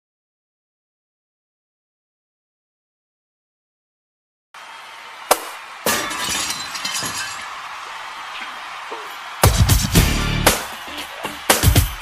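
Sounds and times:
glass shards tinkling: 5.9 - 7.5.

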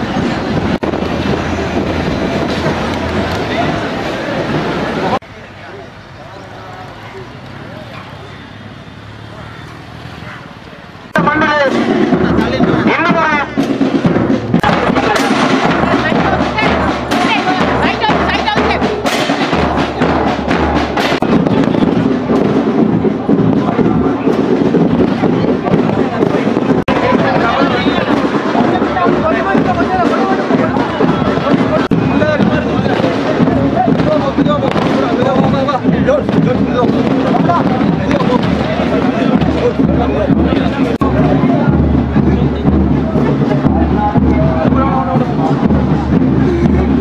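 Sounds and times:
crowd noise: 0.0 - 47.0
firecrackers crackling rapidly: 11.1 - 47.0.

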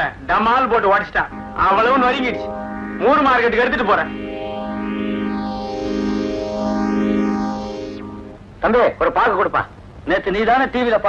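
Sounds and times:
flanged electronic note: 1.3 - 8.8.

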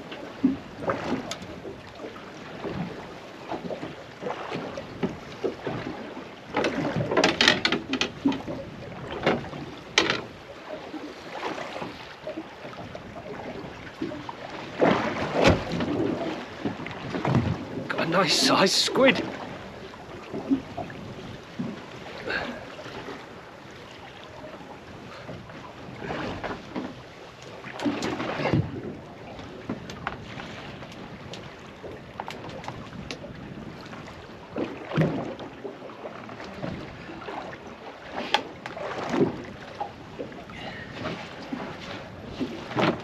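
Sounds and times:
knocks and splashes: 0.0 - 43.0
water slapping against boat hull: 0.0 - 43.0.

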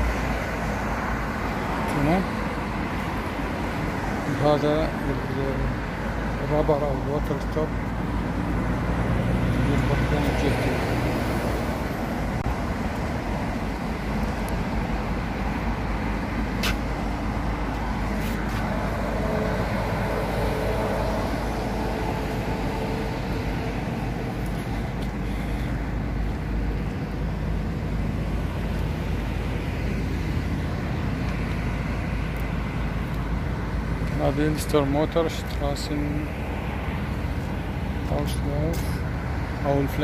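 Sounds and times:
road traffic rumble: 0.0 - 40.0.

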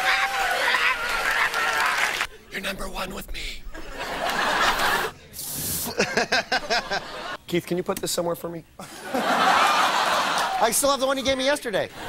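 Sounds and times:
studio audience laughing: 3.7 - 5.2, 5.8 - 7.4, 8.8 - 10.8.

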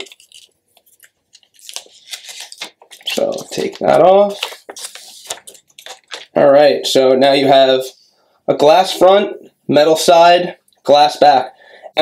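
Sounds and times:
plastic film crinkling: 0.0 - 6.4.

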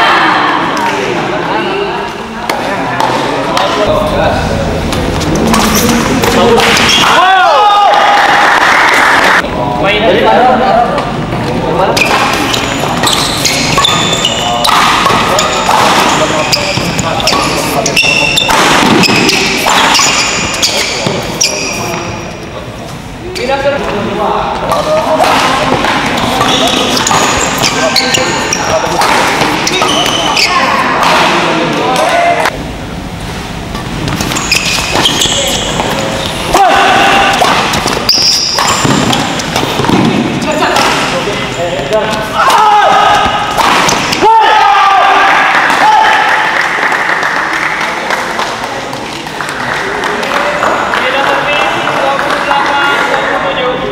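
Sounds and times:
shouts and chatter: 0.0 - 2.2, 6.1 - 9.4, 36.5 - 37.6, 42.3 - 47.2
court shoes squeaking: 2.0 - 7.2, 11.0 - 23.7, 24.6 - 32.5, 33.1 - 42.4
racket striking shuttlecock: 12.0 - 21.3, 24.6 - 31.4, 37.3 - 41.2, 42.5 - 44.2.

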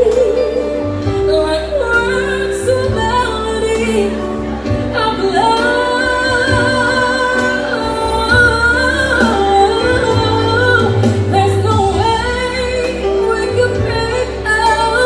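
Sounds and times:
electric keyboard: 0.0 - 15.0
woman singing a slow ballad: 0.0 - 15.0.

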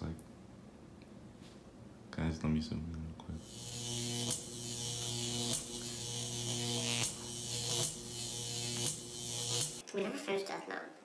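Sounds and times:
low electric buzz with hiss: 2.1 - 10.4.

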